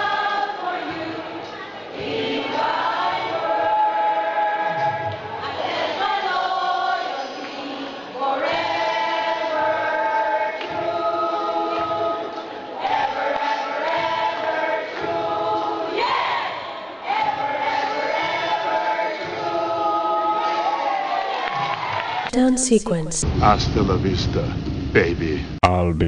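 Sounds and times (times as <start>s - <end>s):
choir singing a hymn: 0.0s - 22.1s.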